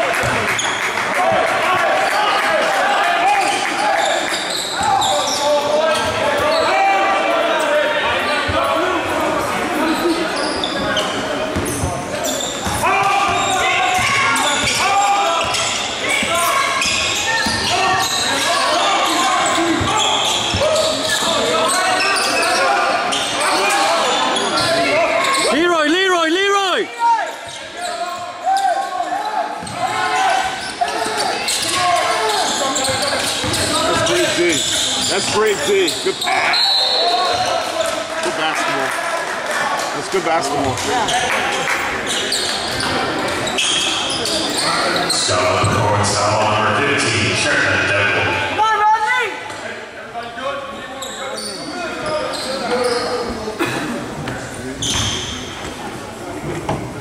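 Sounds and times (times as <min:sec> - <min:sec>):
crowd and player voices: 0:00.0 - 0:57.0
basketball bouncing on court: 0:11.5 - 0:12.0.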